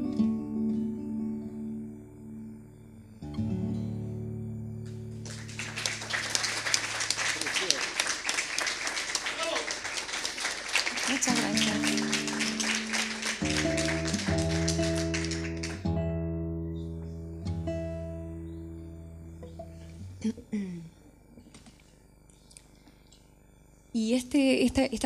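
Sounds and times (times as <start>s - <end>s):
classical guitar playing: 0.0s - 7.2s, 11.1s - 20.1s
audience applauding: 5.1s - 15.9s.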